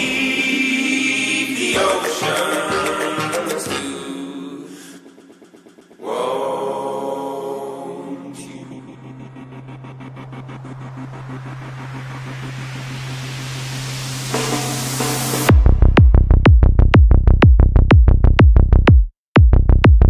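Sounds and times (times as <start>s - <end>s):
low synth drone: 5.0s - 16.4s
rising noise sweep: 5.7s - 15.6s.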